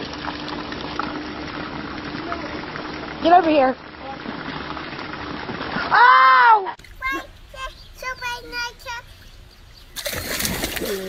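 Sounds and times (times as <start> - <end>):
feet splashing in puddle: 9.9 - 11.0.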